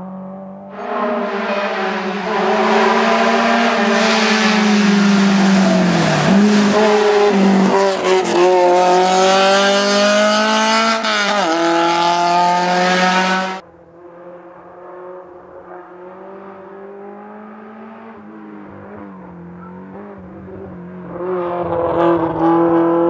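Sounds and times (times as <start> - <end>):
rally car engine at full throttle: 0.0 - 23.0.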